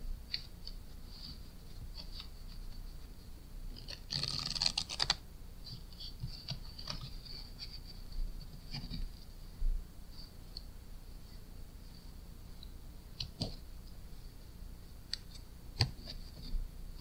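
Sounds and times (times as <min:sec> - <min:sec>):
playing cards riffle shuffle: 0:03.7 - 0:09.2
cards tapping and sliding: 0:03.8 - 0:05.2.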